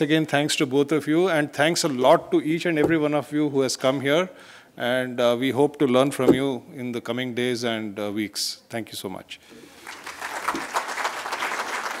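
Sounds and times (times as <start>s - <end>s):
audience applauding: 9.8s - 12.0s.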